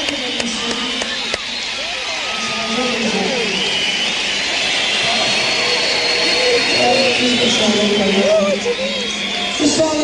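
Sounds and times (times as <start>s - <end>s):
crowd cheering and screaming: 0.0s - 10.0s
piercing whistles: 3.5s - 8.4s.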